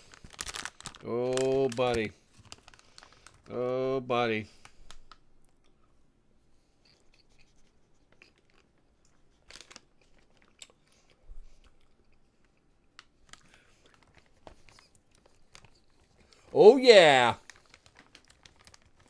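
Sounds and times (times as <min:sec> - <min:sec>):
person chewing popcorn: 0:06.9 - 0:16.6, 0:17.4 - 0:19.0.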